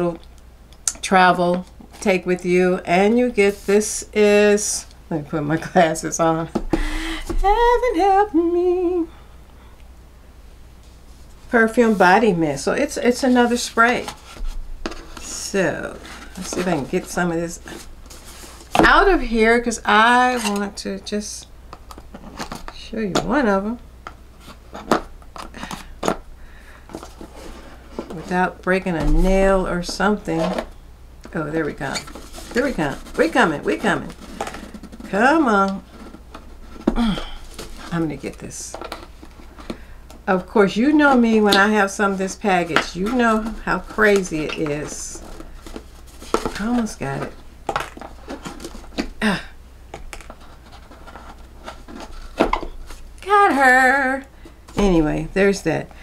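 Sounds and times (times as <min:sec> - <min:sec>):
packaging rustling: 0:32.0 - 0:33.3, 0:34.0 - 0:35.1, 0:43.3 - 0:49.2.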